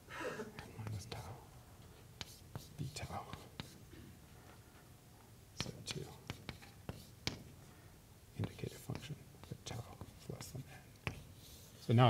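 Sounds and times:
chalk tapping and scratching on blackboard: 0.6 - 1.4, 2.0 - 3.9, 5.6 - 7.6, 8.4 - 12.0.

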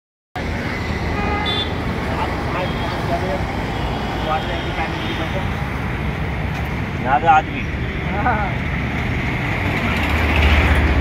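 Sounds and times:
road traffic noise: 0.4 - 11.0.

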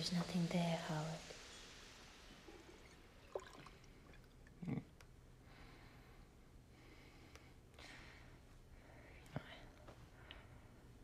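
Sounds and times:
faint breathy whisper: 8.8 - 10.7.

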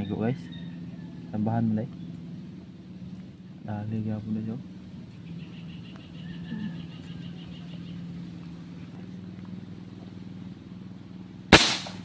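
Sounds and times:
steady low hum: 0.0 - 12.0
airgun shot: 11.5 - 12.0.

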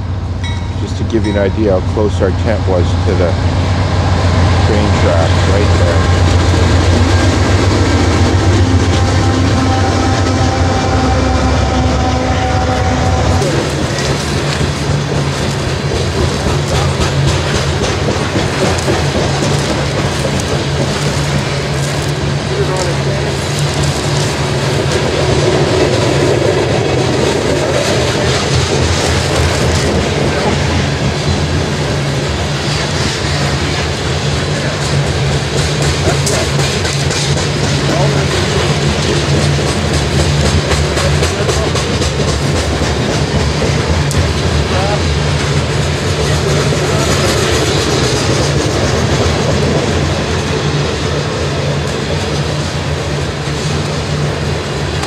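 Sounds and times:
freight train rolling past: 0.0 - 55.0.

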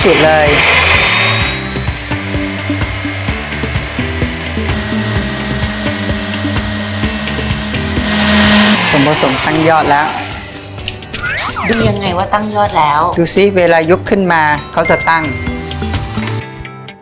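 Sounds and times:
electric stand mixer whisking: 0.0 - 11.1
background music: 0.0 - 17.0.

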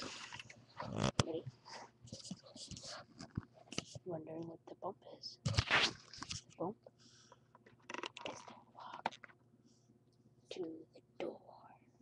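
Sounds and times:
person speaking: 0.0 - 6.8, 7.9 - 9.2.

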